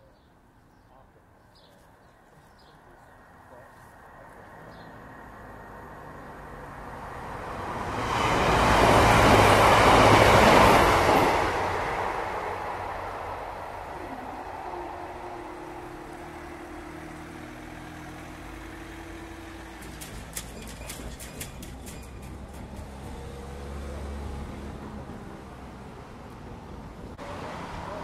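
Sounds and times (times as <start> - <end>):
train passing at speed: 4.5 - 28.0.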